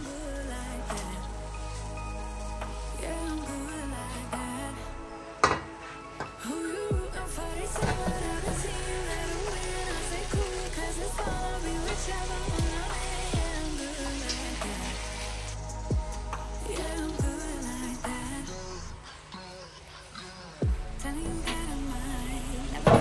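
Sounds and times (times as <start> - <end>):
melodic background music: 0.0 - 23.0
deep bass drum hits: 12.5 - 13.7, 15.8 - 17.7, 20.6 - 21.7.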